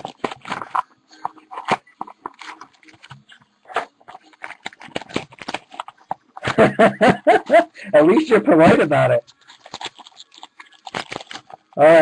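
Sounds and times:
plastic wrap and foil pack crinkling: 0.0s - 7.2s, 8.1s - 12.0s.

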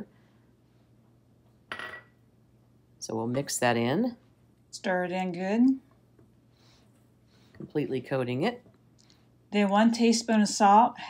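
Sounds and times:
glass bowl clink: 1.7s - 2.2s.

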